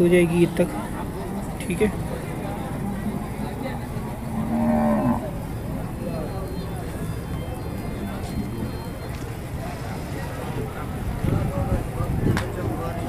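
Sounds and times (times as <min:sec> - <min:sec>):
steady background noise: 0:00.0 - 0:13.0
cow mooing: 0:04.1 - 0:05.4.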